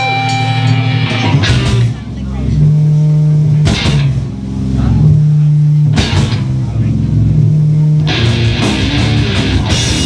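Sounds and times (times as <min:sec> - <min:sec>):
live rock band playing: 0:00.0 - 0:02.2, 0:03.6 - 0:04.3, 0:05.9 - 0:06.6, 0:07.4 - 0:10.0.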